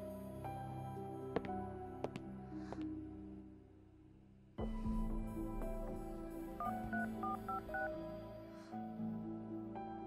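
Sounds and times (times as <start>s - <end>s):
soft background music: 0.0s - 10.0s
phone keypad dialing beeps: 6.6s - 7.9s.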